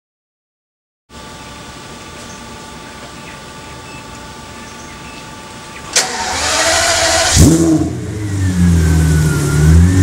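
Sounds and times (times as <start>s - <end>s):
faint steady whine: 1.1s - 7.4s
engine cranking and firing: 5.9s - 10.0s.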